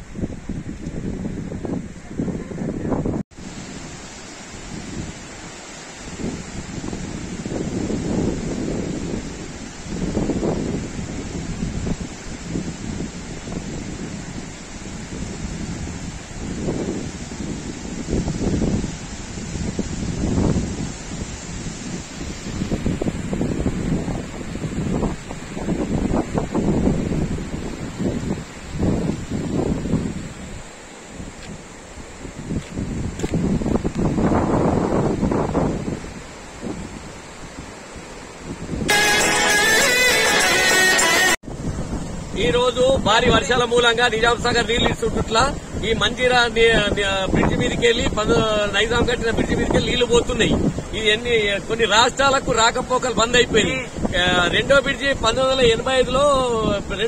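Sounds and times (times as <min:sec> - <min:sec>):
wind buffeting microphone: 0:00.0 - 0:39.0, 0:41.4 - 0:57.0
river rushing: 0:00.0 - 0:57.0.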